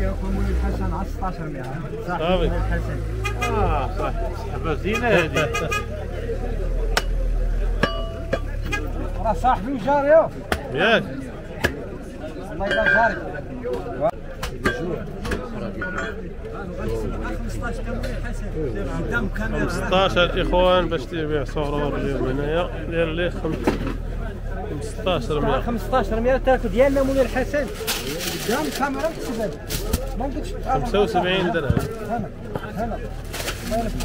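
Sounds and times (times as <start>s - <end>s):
voices talking: 0.0s - 34.0s.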